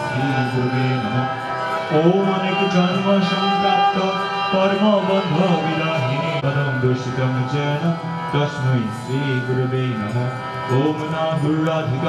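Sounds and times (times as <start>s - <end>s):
harmonium drone: 0.0s - 12.0s
man singing devotional chant: 0.0s - 12.0s.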